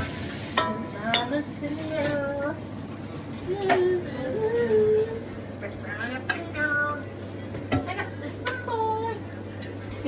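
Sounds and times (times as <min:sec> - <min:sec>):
dishes clinking: 0:00.0 - 0:02.4.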